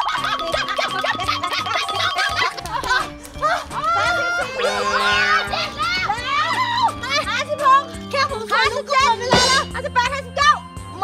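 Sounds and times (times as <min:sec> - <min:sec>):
background music with held notes: 0:00.0 - 0:11.0
high-pitched voices calling out: 0:01.1 - 0:07.8.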